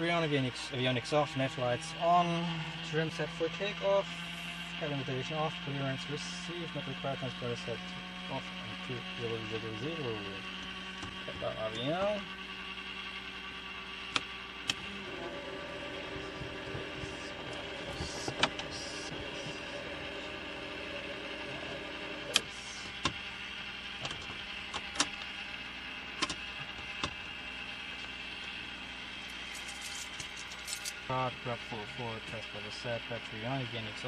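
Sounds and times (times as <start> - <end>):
electrical hum with tones: 0.0 - 34.0.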